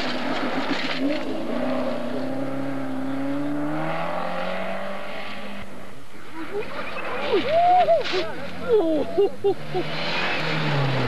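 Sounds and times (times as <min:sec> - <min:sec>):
car engine revving: 0:00.0 - 0:11.0
rally car engine driving away: 0:00.0 - 0:11.0.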